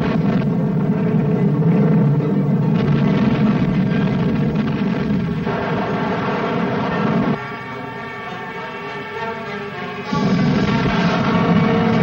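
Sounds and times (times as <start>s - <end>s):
piston-engine warplanes droning: 0.0s - 12.0s.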